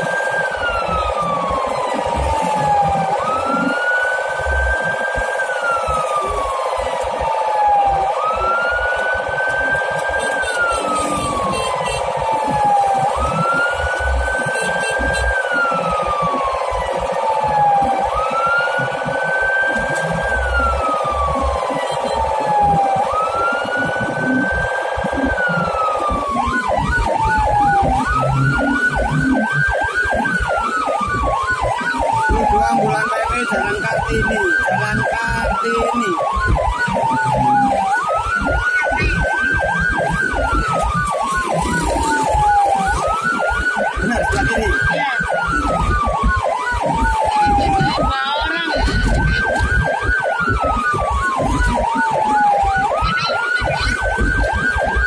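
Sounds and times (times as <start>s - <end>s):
ambulance siren wailing: 0.0s - 55.0s
engine and road rumble: 0.0s - 55.0s
fast pulsing siren tone: 0.0s - 55.0s.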